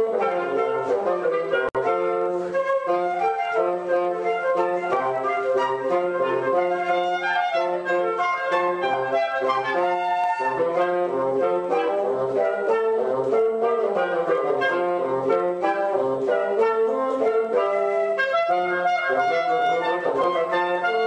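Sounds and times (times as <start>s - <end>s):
bassoon: 0.0s - 21.0s
clarinet: 0.0s - 21.0s
flute: 0.0s - 21.0s.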